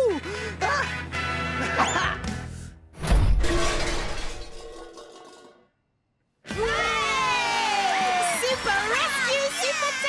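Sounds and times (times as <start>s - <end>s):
loud smash of something breaking: 3.0s - 5.0s
debris clattering: 3.0s - 5.6s.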